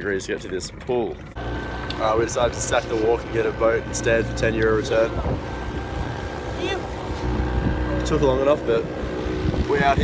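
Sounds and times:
boat engine droning: 0:00.7 - 0:10.0.

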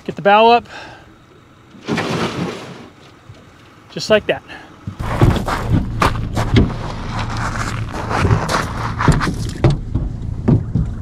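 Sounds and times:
boat hull scraping onto shore: 0:01.8 - 0:03.0, 0:05.0 - 0:11.0.

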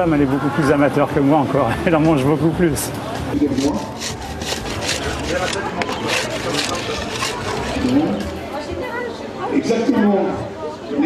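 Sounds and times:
indistinct background voices: 0:00.0 - 0:11.0
scraping and rubbing noises: 0:02.8 - 0:08.7.

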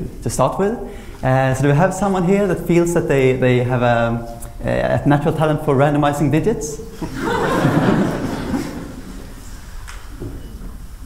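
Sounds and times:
audience laughing: 0:07.0 - 0:09.4.

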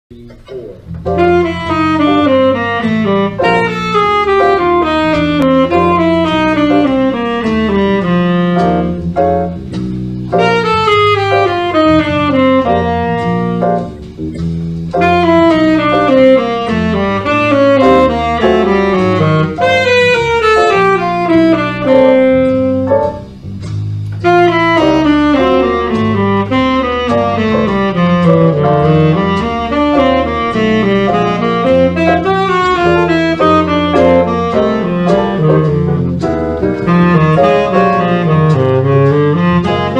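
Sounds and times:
backing track bass notes: 0:00.1 - 0:39.9
tenor saxophone runs: 0:01.1 - 0:09.2, 0:10.3 - 0:14.0, 0:15.0 - 0:23.2, 0:24.2 - 0:39.9.

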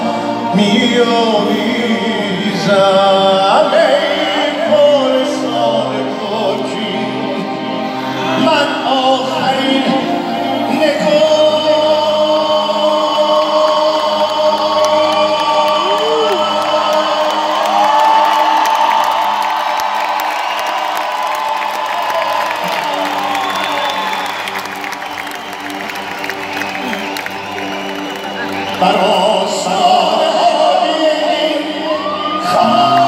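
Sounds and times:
man singing long notes: 0:00.0 - 0:19.6, 0:28.8 - 0:33.0
keyboard and band accompaniment: 0:00.0 - 0:33.0
audience cheering and whooping: 0:13.3 - 0:33.0.

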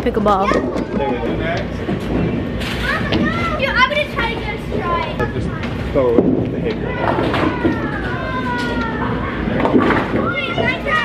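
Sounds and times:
noisy clatter: 0:00.0 - 0:11.0
bowling balls rolling: 0:00.1 - 0:11.0.

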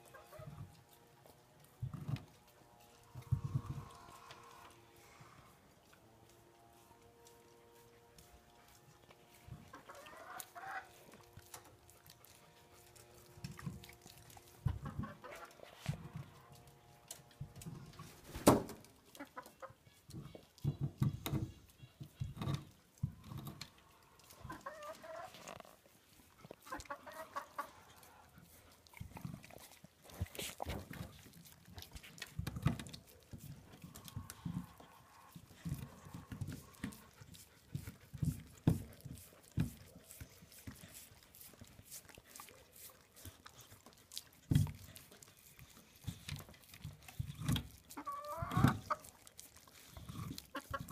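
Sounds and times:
chicken clucking: 0:00.0 - 0:00.8, 0:09.4 - 0:11.6, 0:14.6 - 0:16.5, 0:19.0 - 0:22.7, 0:23.4 - 0:25.6, 0:26.6 - 0:28.3, 0:32.6 - 0:38.4, 0:47.2 - 0:49.2, 0:50.2 - 0:50.9
dog licking and gnawing ice: 0:00.0 - 0:50.9.

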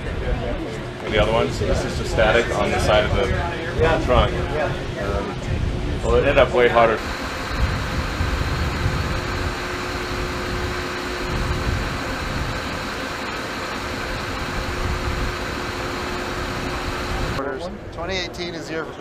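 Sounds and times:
machinery hum and hiss: 0:06.9 - 0:17.4.

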